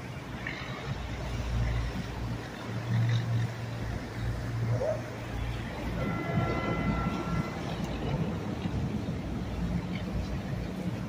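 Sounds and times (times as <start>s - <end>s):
boat outboard motors droning: 0.0s - 11.0s.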